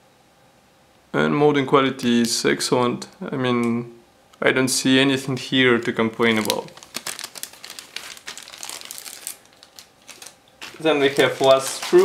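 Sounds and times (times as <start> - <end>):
plastic bags crinkling: 5.4 - 12.0.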